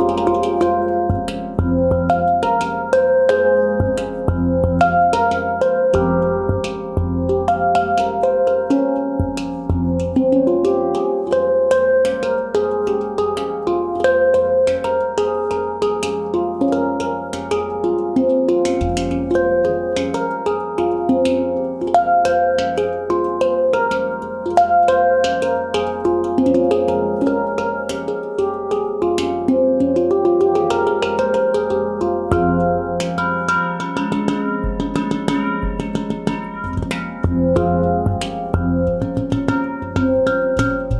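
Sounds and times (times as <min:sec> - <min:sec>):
deep handpan centre note: 0:00.0 - 0:25.2, 0:25.8 - 0:40.9
handpan played with fingertips: 0:00.0 - 0:40.9.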